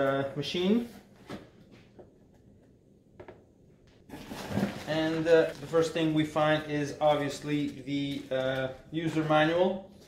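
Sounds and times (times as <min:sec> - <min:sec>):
cardboard and packing rustling: 0:04.1 - 0:06.1.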